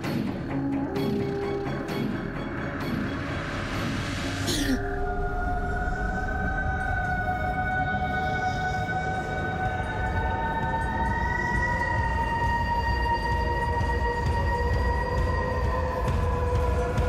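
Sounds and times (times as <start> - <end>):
eerie sustained tones: 0.7 - 17.0
low rumble: 4.2 - 11.0.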